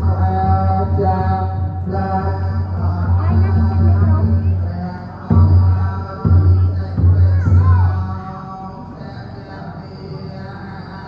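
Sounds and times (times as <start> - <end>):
chanting in long held notes: 0.0 - 11.0.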